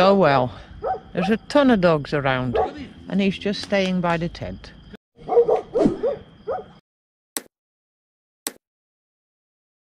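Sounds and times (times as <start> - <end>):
dogs barking and yipping: 0.8 - 1.4, 2.5 - 2.9, 5.2 - 6.8.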